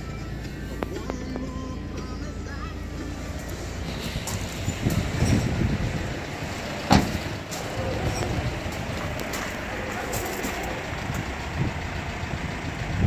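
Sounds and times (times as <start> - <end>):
handling noise climbing out: 2.9 - 10.9
car door slamming: 6.7 - 8.2.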